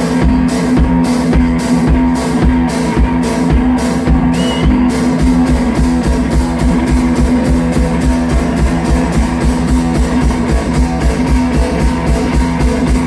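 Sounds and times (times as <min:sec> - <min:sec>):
kick drum and cymbal beat: 0:00.0 - 0:13.0.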